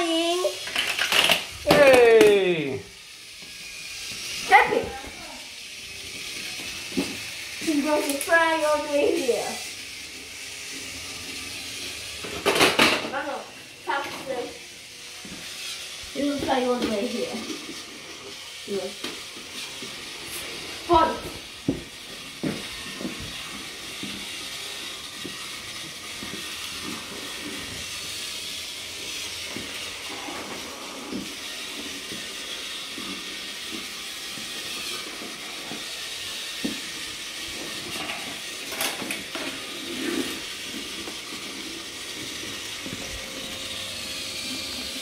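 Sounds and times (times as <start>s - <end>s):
toy train motors whirring: 0.0s - 45.0s
wheels clicking on plastic track: 0.0s - 45.0s.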